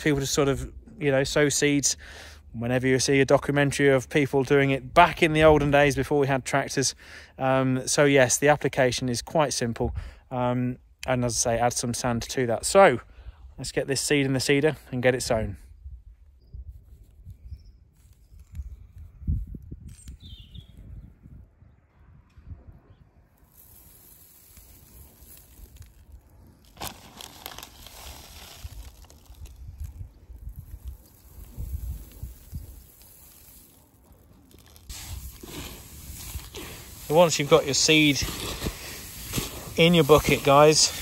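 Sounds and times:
seed pattering into fabric hopper: 23.4 - 41.0.

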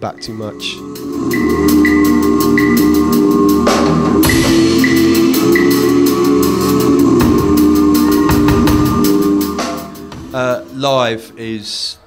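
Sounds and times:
drum and bass music: 0.0 - 11.3
keyboard chords: 0.0 - 11.4
hi-hat strokes: 0.2 - 11.0
loud drum hit: 1.2 - 10.4.

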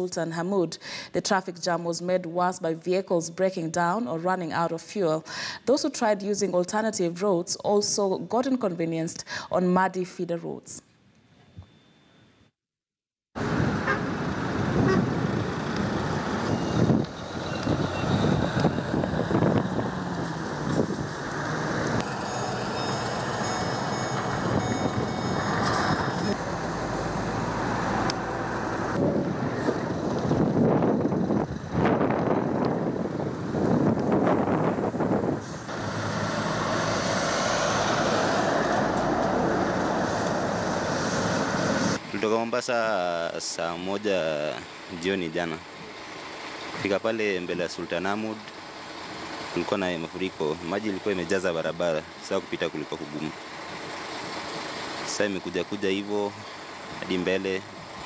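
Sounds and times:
heavy truck engines running: 13.4 - 42.3.

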